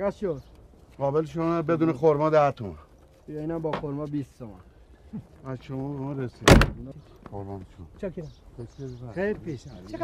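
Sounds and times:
vehicle door slamming: 6.4 - 6.8.

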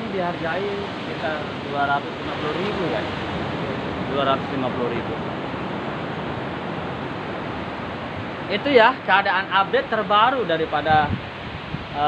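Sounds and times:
surf breaking on beach: 0.0 - 12.0.

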